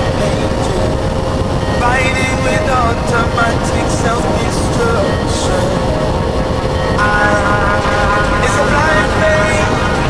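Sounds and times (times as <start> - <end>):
song playing: 0.0 - 10.0
wind and road noise: 0.0 - 10.0.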